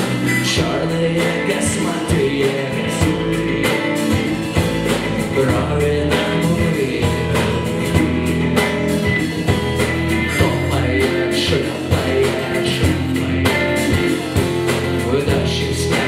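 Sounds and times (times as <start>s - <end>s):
person singing: 0.0s - 8.5s, 10.1s - 16.0s
drums: 0.0s - 16.0s
electric guitar: 0.0s - 16.0s
strummed acoustic-electric guitar: 0.0s - 16.0s.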